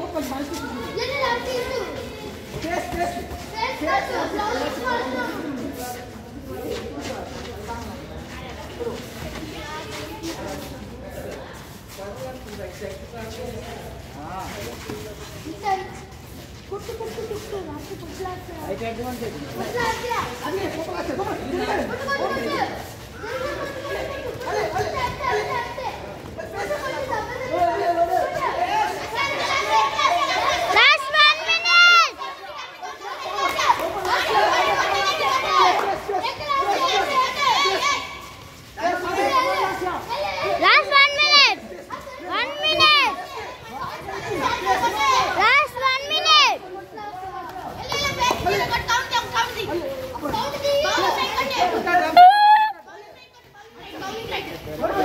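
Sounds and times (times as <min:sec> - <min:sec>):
voices talking and calling out: 0:00.0 - 0:55.0
children shouting: 0:21.9 - 0:55.0.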